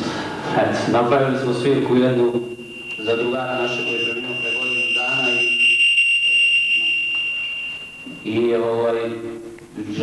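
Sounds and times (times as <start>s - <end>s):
microphone feedback whine: 1.0s - 9.8s.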